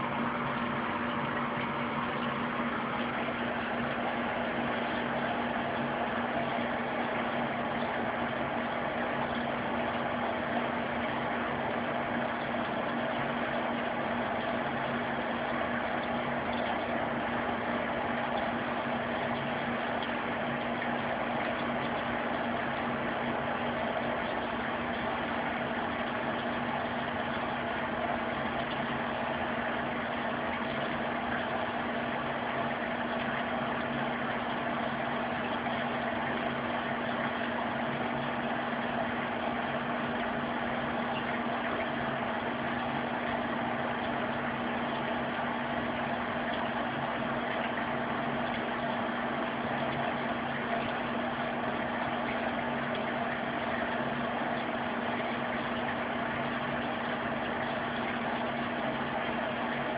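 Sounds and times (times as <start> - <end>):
steady machine hum: 0.0 - 59.9.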